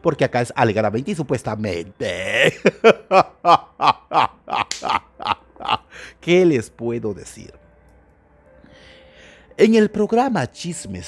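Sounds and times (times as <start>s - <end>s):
man laughing hard: 2.1s - 6.0s.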